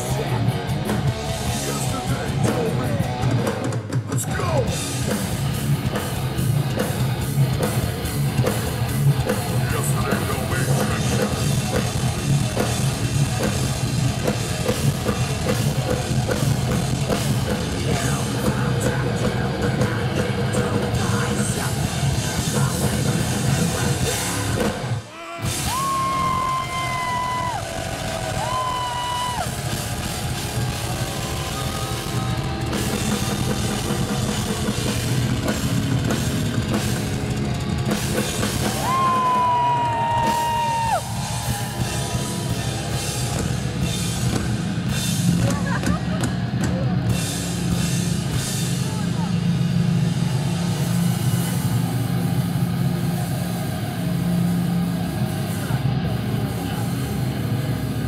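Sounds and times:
drums: 0:00.0 - 0:58.0
heavy metal band playing: 0:00.0 - 0:58.0.

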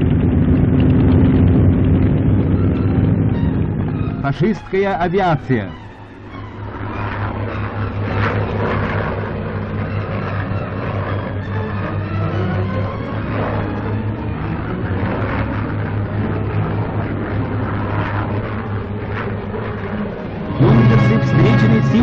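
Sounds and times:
bomber engines droning: 0:00.0 - 0:22.0.

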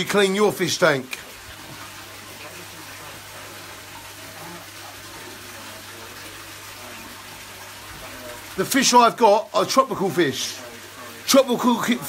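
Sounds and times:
water splashing into aquarium: 0:00.0 - 0:12.0.

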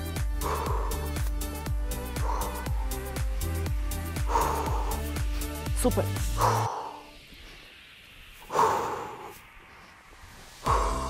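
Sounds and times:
music with bass beat: 0:00.0 - 0:08.4, 0:09.4 - 0:11.0.

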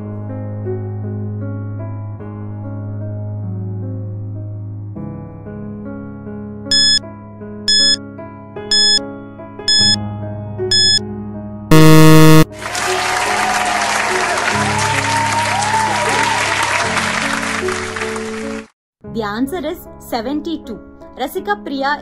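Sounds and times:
keyboard background music: 0:06.7 - 0:07.0, 0:07.7 - 0:08.0, 0:08.7 - 0:09.0, 0:09.7 - 0:10.1, 0:10.7 - 0:11.0
loud buzzer tone: 0:06.7 - 0:07.0, 0:07.7 - 0:08.0, 0:08.7 - 0:09.0, 0:09.7 - 0:10.0, 0:10.7 - 0:11.0, 0:11.7 - 0:12.5
short countdown beeps: 0:06.7 - 0:07.0, 0:07.7 - 0:08.0, 0:08.7 - 0:09.0, 0:09.7 - 0:10.0, 0:10.7 - 0:11.0, 0:11.7 - 0:12.5
crowd applause and cheering: 0:12.6 - 0:18.6.

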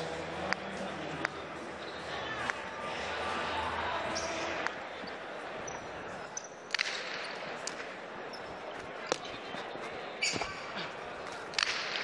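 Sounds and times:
faint voices: 0:07.4 - 0:12.0.

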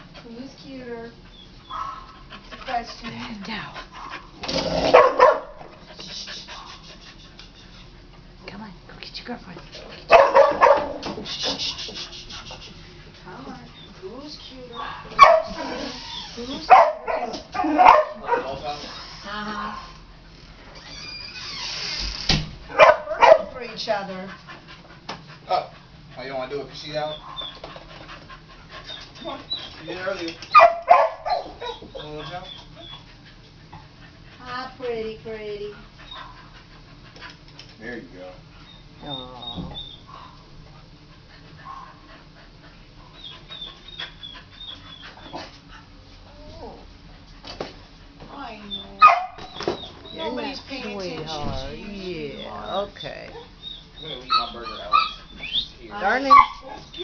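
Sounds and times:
dogs whimpering and yipping: 0:01.2 - 0:02.3, 0:13.3 - 0:19.4, 0:26.8 - 0:27.8, 0:28.7 - 0:33.9, 0:35.9 - 0:37.0, 0:38.6 - 0:40.5, 0:41.2 - 0:46.9, 0:48.5 - 0:57.0
dog whining: 0:01.3 - 0:02.2, 0:14.6 - 0:20.0, 0:20.7 - 0:22.0, 0:26.8 - 0:27.7, 0:28.8 - 0:33.2, 0:36.0 - 0:36.5, 0:38.6 - 0:40.4, 0:43.1 - 0:46.9, 0:48.4 - 0:57.0.

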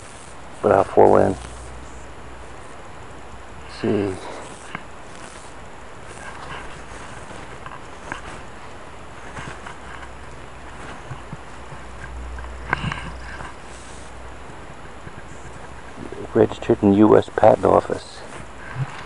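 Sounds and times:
rustling in dry grass: 0:00.0 - 0:19.0.

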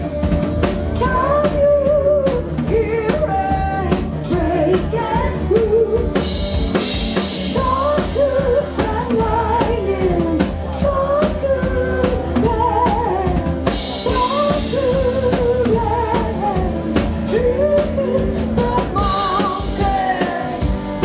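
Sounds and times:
live rock band playing: 0:00.0 - 0:21.0
woman singing: 0:00.9 - 0:21.0.

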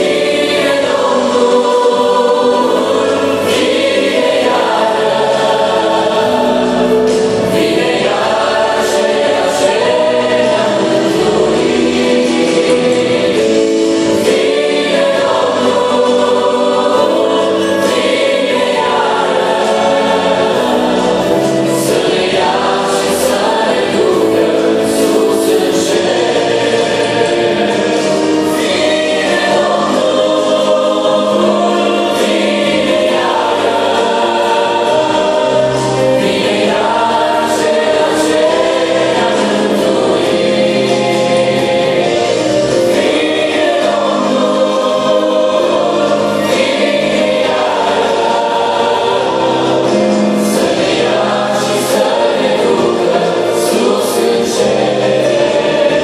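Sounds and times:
group singing gospel song: 0:00.0 - 0:56.0.

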